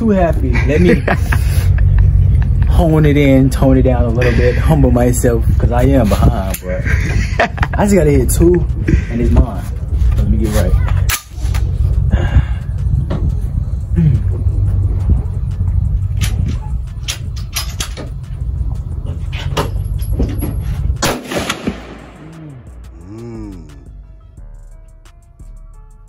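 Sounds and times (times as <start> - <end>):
steady low rumble: 0.0 - 26.0
music: 6.9 - 21.0, 21.6 - 26.0
rifle shots: 21.0 - 22.2.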